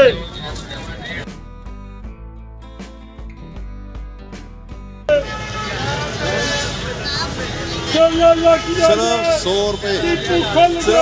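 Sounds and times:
crowd chatter: 0.0s - 1.3s, 5.1s - 11.0s
traffic passing: 5.1s - 11.0s.

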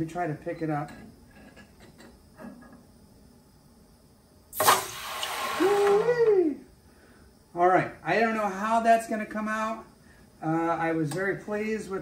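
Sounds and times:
hot metal sizzling in water: 4.6s - 5.9s
rising and falling whine: 4.8s - 6.7s.

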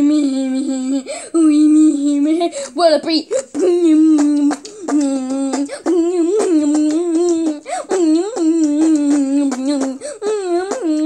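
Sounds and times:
child beatboxing: 0.0s - 11.0s.

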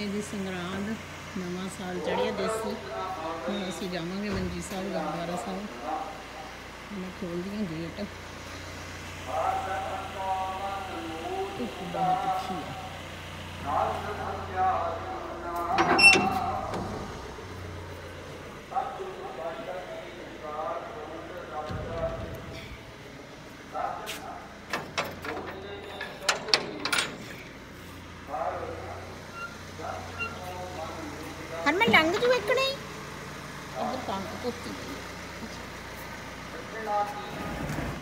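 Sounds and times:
metal gate clanking and rattling: 15.6s - 17.5s, 24.5s - 27.7s, 29.0s - 30.7s.

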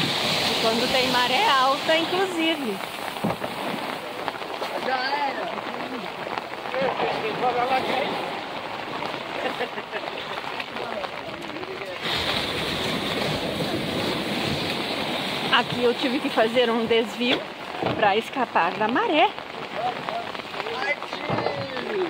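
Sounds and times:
surf washing up beach: 0.0s - 22.0s
faint voices: 3.8s - 14.6s, 18.9s - 22.0s.

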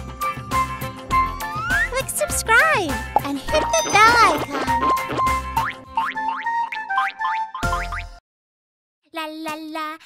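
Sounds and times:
cartoon jingle: 2.0s - 5.1s.

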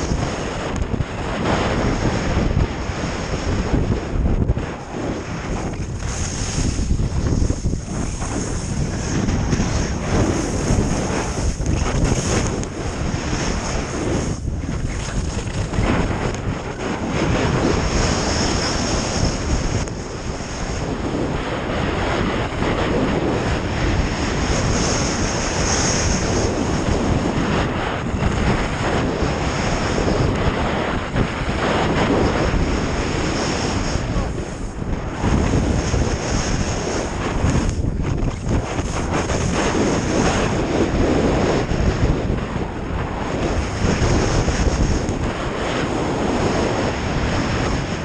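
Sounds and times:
wind buffeting microphone: 0.0s - 48.0s
skis sliding over packed snow: 4.7s - 42.0s, 43.2s - 48.0s.

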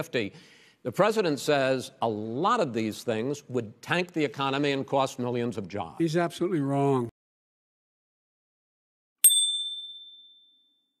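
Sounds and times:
bell-like ding: 9.2s - 11.0s.

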